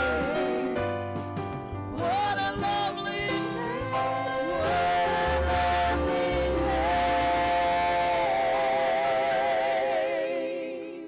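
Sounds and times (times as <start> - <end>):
gospel voices and band: 0.0 - 11.0.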